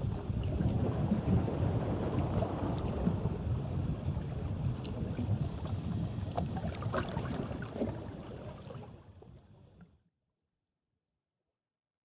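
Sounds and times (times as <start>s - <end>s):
wind buffeting microphone: 0.0s - 8.3s
waves lapping against rocks: 0.0s - 9.3s.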